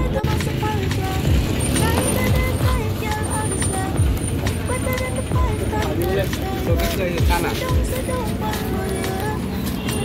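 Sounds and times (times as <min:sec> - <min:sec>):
people's voices: 0:00.0 - 0:10.0
road vehicle rumble: 0:00.0 - 0:10.0.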